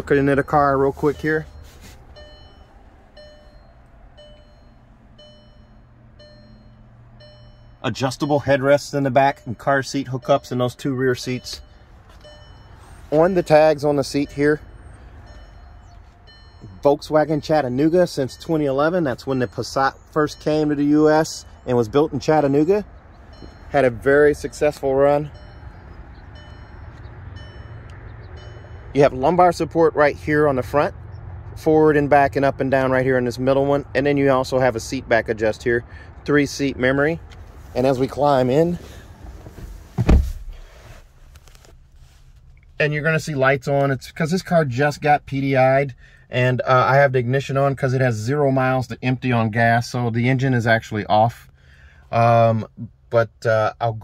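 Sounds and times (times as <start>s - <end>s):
man speaking: 0.0s - 1.6s, 23.7s - 25.3s
steady low rumble: 0.0s - 20.8s
car warning chime: 0.0s - 31.2s
faint rustling: 0.5s - 4.8s, 37.2s - 42.8s
heavy thump onto car seat: 39.5s - 40.6s.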